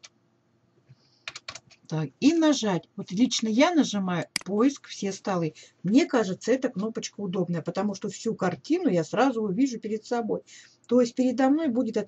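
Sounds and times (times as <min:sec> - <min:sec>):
computer keyboard typing: 0:01.2 - 0:01.8.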